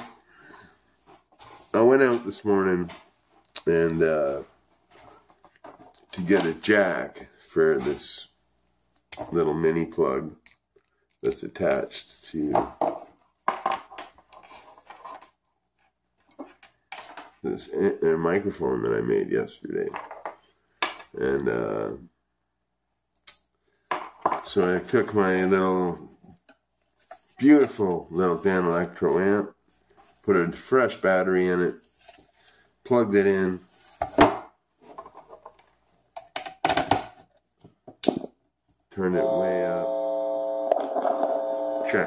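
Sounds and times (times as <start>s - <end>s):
amplifier electrical hum: 37.0s - 42.0s.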